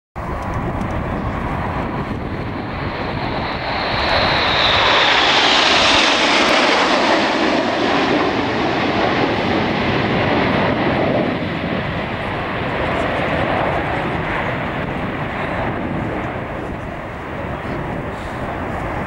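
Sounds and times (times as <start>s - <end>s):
jet engine whine: 0.2s - 19.0s
jets passing overhead: 0.2s - 19.0s.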